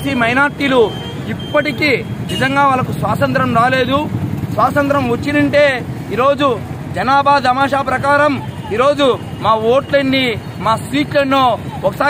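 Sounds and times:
man speaking loudly: 0.0s - 12.0s
street traffic hum: 0.0s - 12.0s.

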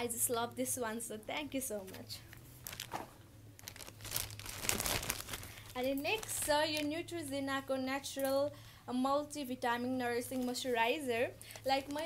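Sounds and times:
wrapper crinkling: 2.5s - 7.0s.

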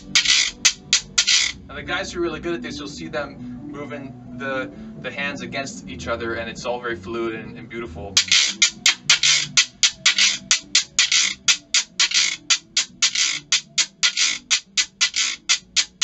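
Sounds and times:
gourd shaker rattling: 0.0s - 1.6s, 8.2s - 16.0s.

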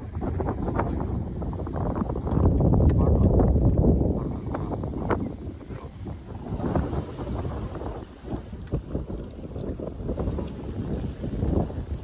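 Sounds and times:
wind on microphone: 0.0s - 12.0s.

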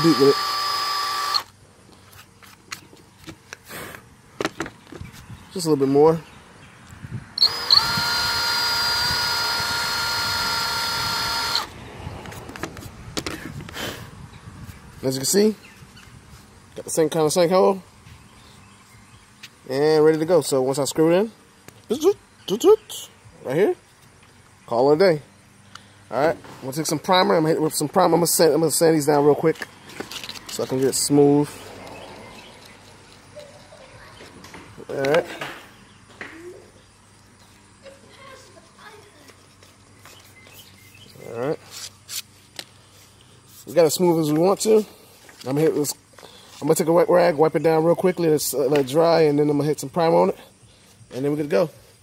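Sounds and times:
cordless drill cutting: 0.0s - 1.5s, 7.4s - 11.7s
handling clicks and knocks: 4.4s - 5.1s.

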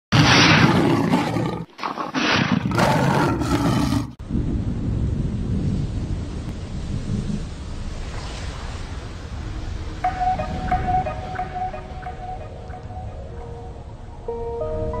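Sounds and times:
big cat roaring: 0.2s - 4.2s
steady low rumble: 4.2s - 15.0s.

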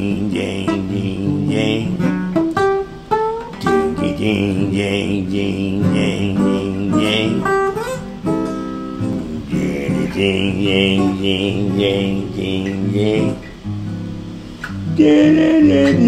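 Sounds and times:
acoustic guitar strumming: 0.0s - 16.0s.

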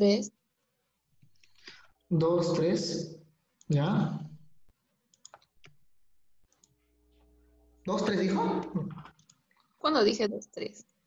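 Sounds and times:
faint electrical hum: 0.0s - 11.0s
keyboard and mouse clicks: 5.1s - 6.8s, 8.9s - 9.7s.

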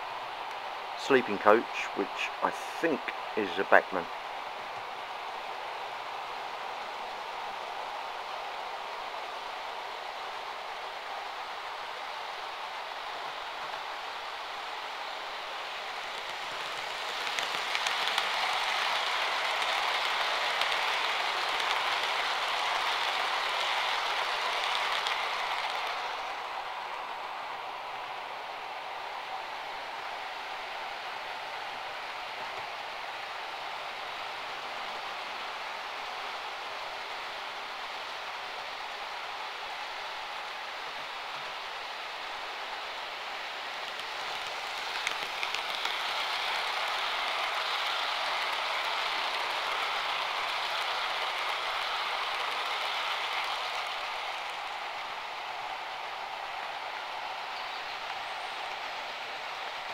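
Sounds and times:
model train wheels rumbling on rail: 0.0s - 59.9s.

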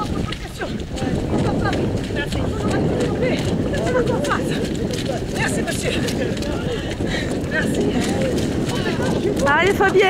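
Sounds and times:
footsteps splashing through mud: 0.0s - 10.0s
voices of people: 0.0s - 10.0s.

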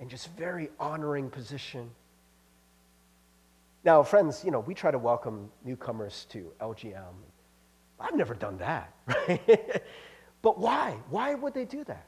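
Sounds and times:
man speaking: 0.0s - 2.0s, 3.8s - 7.3s, 8.0s - 12.0s
faint electrical hum: 0.0s - 12.0s.

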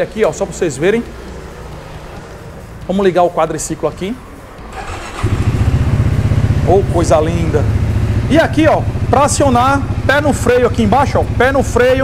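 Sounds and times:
electric starter cranking: 4.7s - 5.7s
atv engine starting and idling: 4.7s - 12.0s.

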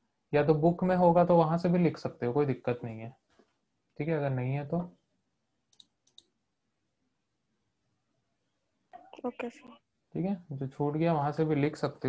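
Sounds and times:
computer mouse clicks: 5.7s - 6.3s.

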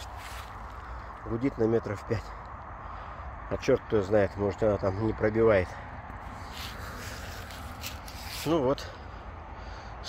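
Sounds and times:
camera handling rustle on grass: 0.0s - 0.9s, 6.2s - 8.6s
low outdoor rumble: 0.0s - 10.0s.

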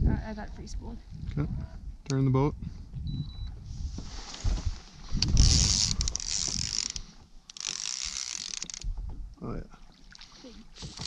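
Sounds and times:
fishing reel whirring: 5.2s - 8.9s.

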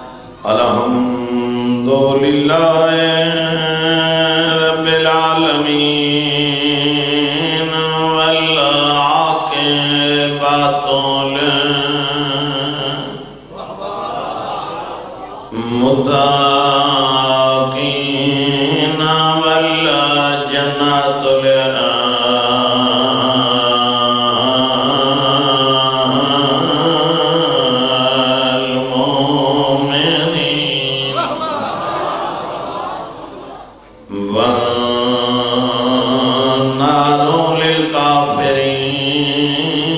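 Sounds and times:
man chanting into microphone: 0.0s - 13.4s, 15.5s - 31.5s, 34.1s - 39.9s.

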